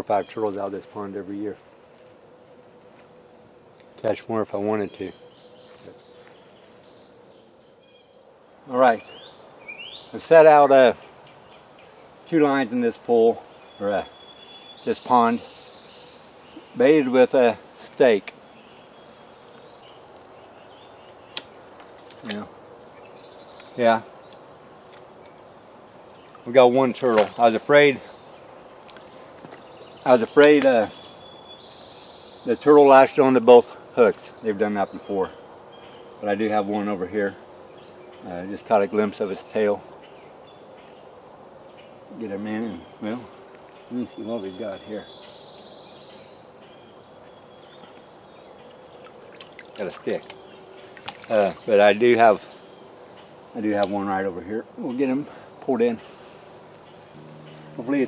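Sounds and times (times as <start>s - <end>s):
high insect drone: 0.0s - 58.0s.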